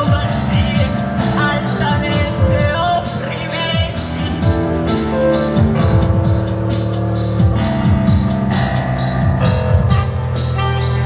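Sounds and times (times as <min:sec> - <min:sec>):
held synth chords: 0:00.0 - 0:11.0
falling bass sweeps: 0:02.3 - 0:11.0.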